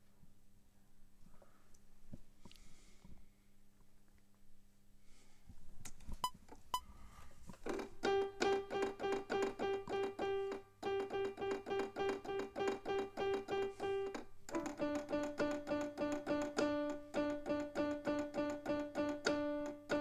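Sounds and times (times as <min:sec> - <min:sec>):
piano repeated note: 0:07.7 - 0:20.0.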